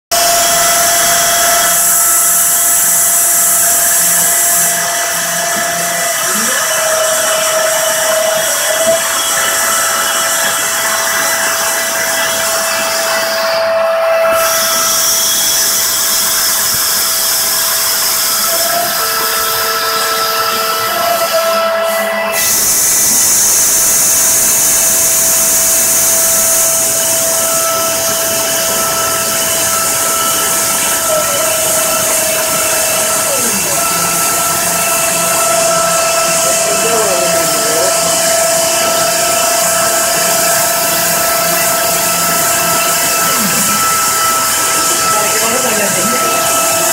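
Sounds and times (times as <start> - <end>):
router spindle whine: 0.0 - 46.9
hissing cutting noise: 0.1 - 46.9.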